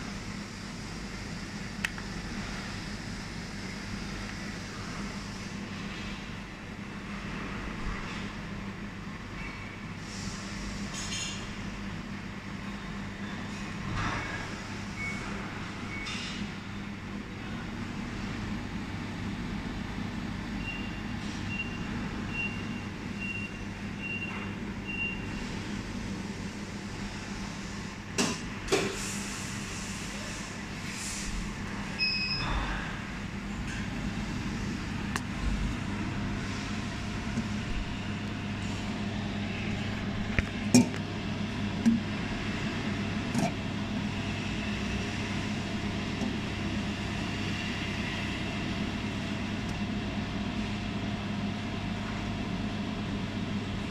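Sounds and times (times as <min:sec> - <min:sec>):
short electronic beeps: 0:32.0 - 0:32.5
welding machine hum: 0:33.2 - 0:51.8.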